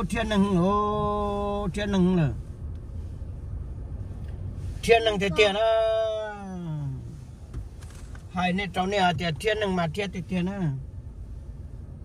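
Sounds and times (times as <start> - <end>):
low road rumble inside car: 0.0 - 12.0.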